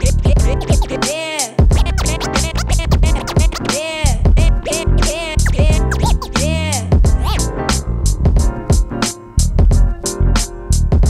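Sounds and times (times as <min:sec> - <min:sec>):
turntable scratching: 0:00.0 - 0:07.4
hip hop beat: 0:00.0 - 0:11.0.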